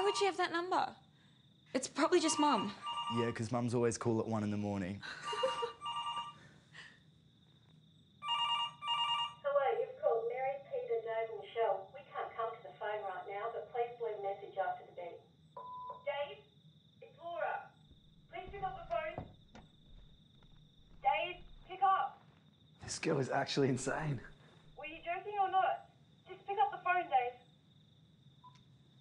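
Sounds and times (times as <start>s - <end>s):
voices talking: 0.0s - 1.0s, 1.8s - 5.8s, 9.4s - 15.2s, 15.9s - 19.3s, 20.9s - 22.2s, 22.8s - 27.4s
telephone ringing: 2.2s - 3.4s, 5.3s - 6.4s, 8.2s - 9.5s.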